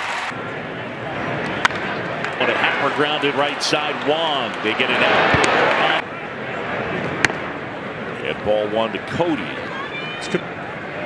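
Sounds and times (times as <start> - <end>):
crowd murmur: 0.3 - 11.0.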